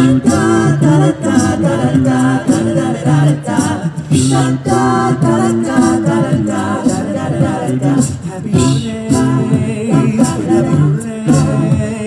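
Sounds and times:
male vocal group singing harmony: 0.0s - 12.0s.

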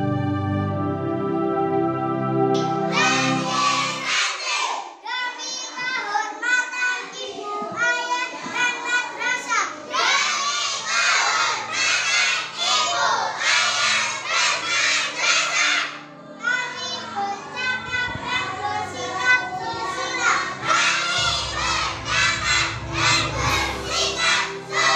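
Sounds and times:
children shouting together: 2.9s - 24.9s.

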